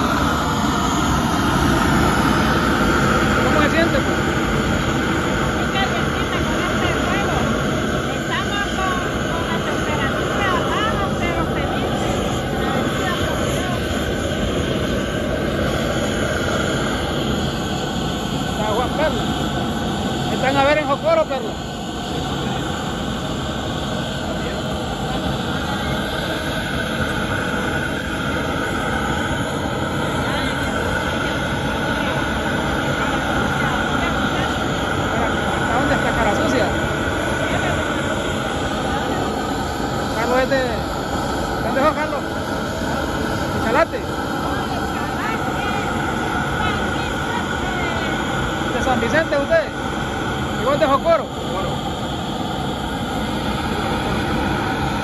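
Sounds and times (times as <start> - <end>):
machinery droning: 0.0 - 55.0
voices: 0.0 - 55.0.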